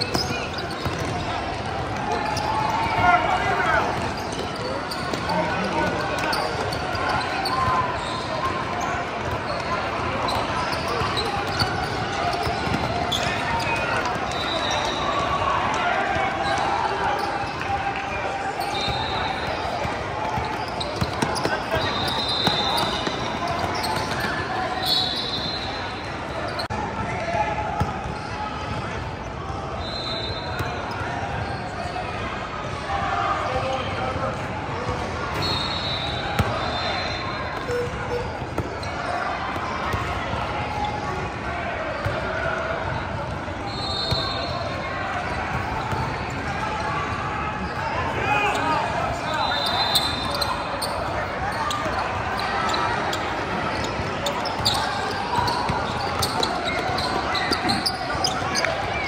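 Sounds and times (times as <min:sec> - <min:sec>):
sneakers squeaking on floor: 0:00.0 - 0:15.4, 0:16.2 - 0:26.7, 0:27.8 - 0:32.2, 0:34.8 - 0:42.3, 0:42.9 - 0:59.0
players calling out: 0:00.0 - 0:28.7, 0:35.0 - 0:59.0.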